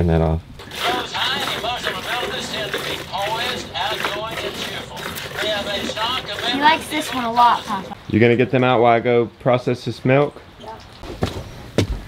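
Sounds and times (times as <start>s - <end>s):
indistinct talking voices: 0.6s - 8.6s.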